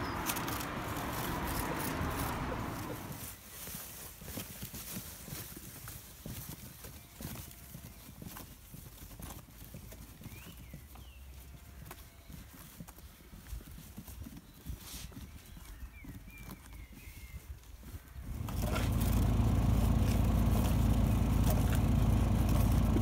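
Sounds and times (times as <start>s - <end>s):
bird chirping: 0.0s - 3.1s
footsteps on dirt path: 0.0s - 23.0s.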